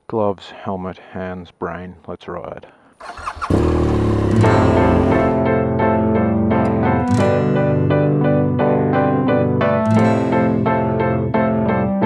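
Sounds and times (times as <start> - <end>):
motorcycle engine starting: 3.0 - 5.7
loud keyboard music: 3.9 - 12.0.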